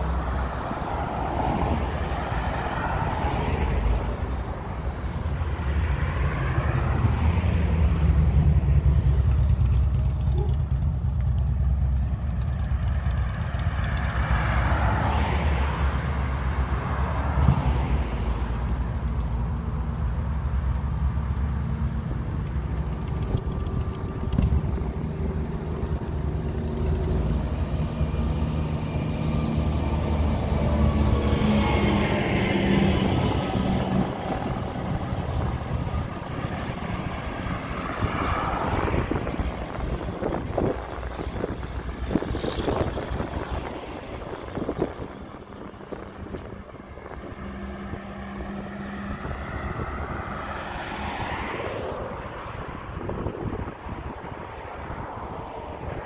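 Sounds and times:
heavy engine rumble: 0:00.0 - 0:51.2
cars passing: 0:00.0 - 0:56.0.

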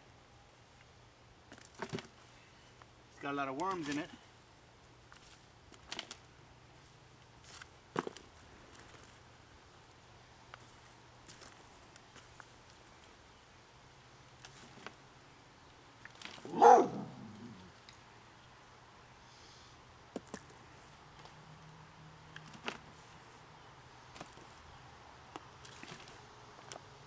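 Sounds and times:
dog barking: 0:16.5 - 0:17.5.

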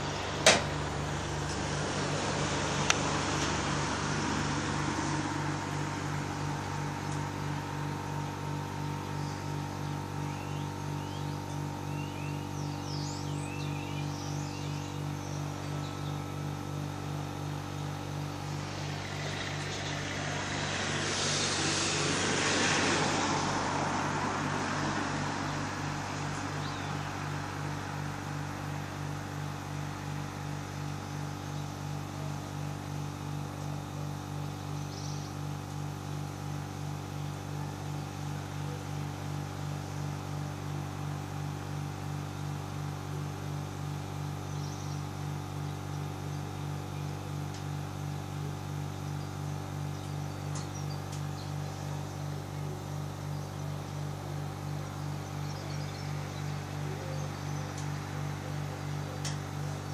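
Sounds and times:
car passing: 0:00.0 - 0:08.5, 0:18.0 - 0:28.7
low pulsing hum: 0:00.0 - 0:59.9.

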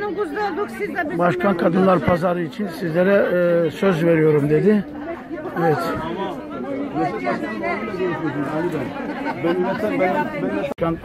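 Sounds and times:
indistinct chatter: 0:00.0 - 0:11.0.

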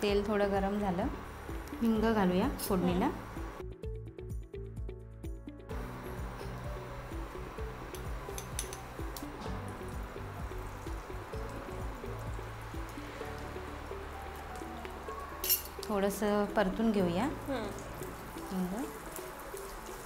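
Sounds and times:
spice crackling in hot oil: 0:05.7 - 0:20.0.

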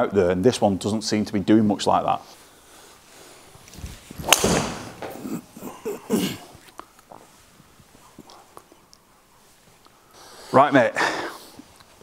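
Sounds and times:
golf club striking ball: 0:04.2 - 0:05.1.

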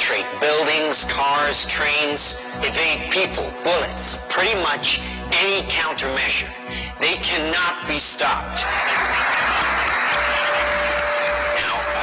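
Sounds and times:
audience applause: 0:08.6 - 0:12.0.

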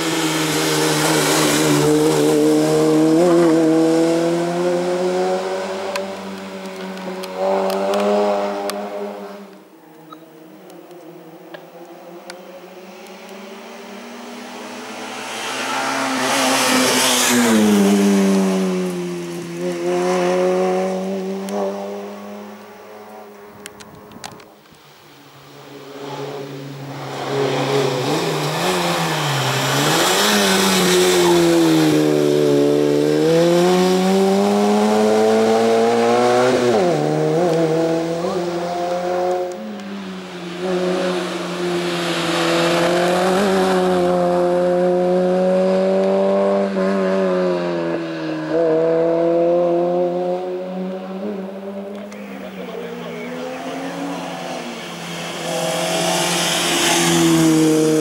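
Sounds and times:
race car engine revving: 0:00.0 - 0:23.5, 0:25.6 - 0:58.0.

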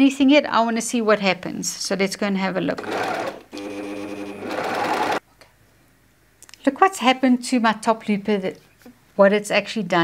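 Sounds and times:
overlocker sewing fabric: 0:02.8 - 0:05.2.

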